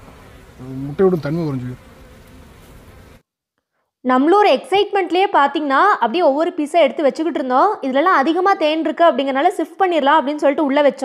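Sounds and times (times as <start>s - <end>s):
bees buzzing: 0.0s - 3.2s.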